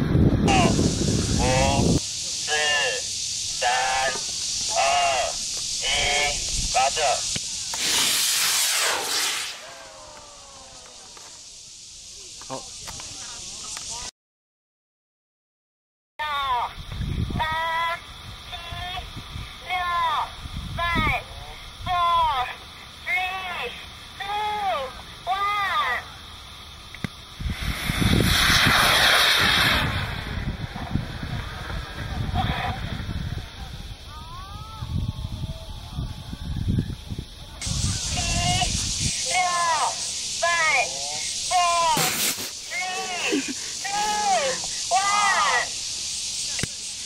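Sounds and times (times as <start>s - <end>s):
wind noise on microphone: 0.0s - 2.1s, 4.5s - 7.9s, 16.4s - 22.5s, 27.0s - 39.9s
rocket motor rushing hiss: 0.0s - 14.1s, 22.7s - 35.4s, 37.0s - 47.0s
voices shouting countdown: 2.4s - 7.2s, 38.1s - 42.0s, 42.7s - 45.8s.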